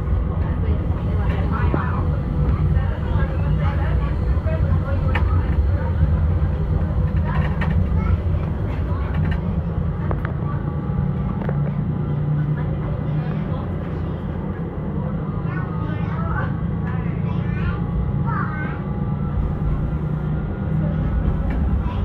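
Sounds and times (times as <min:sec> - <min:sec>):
passengers talking indistinctly: 0:00.0 - 0:22.0
tram low rumble: 0:00.0 - 0:22.0.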